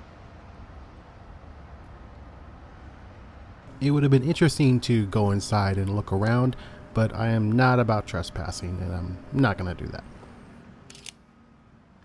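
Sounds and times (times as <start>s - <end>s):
faint outdoor background noise: 0.0s - 12.0s
camera shutter click: 10.9s - 11.2s.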